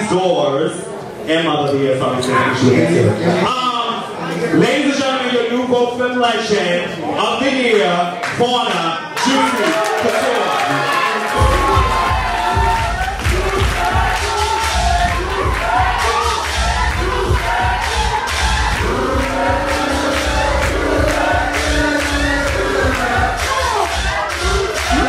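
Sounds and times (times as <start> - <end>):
crowd cheering and screaming: 9.2 - 25.0
dance music with heavy bass: 11.4 - 25.0.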